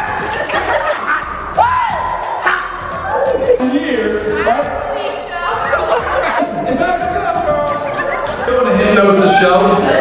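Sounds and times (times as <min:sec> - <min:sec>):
background music: 0:00.0 - 0:10.0
people exclaiming and chattering: 0:00.0 - 0:10.0.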